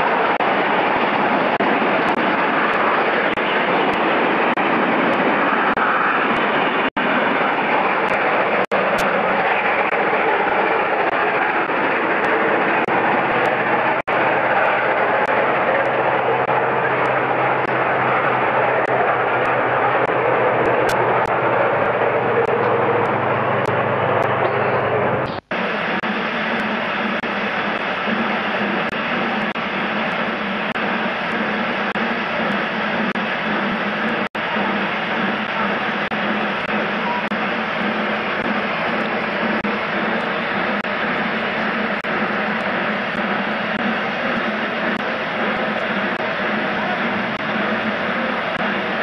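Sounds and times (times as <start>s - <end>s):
low hum: 0.0s - 49.0s
steam train rushing past: 0.0s - 49.0s.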